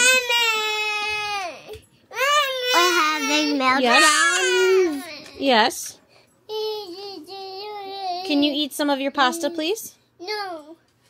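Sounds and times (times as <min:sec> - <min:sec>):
toddler crying: 0:00.0 - 0:05.4.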